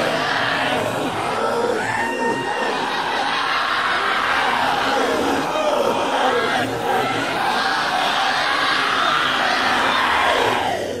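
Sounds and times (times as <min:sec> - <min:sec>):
voices shouting: 0:00.0 - 0:11.0.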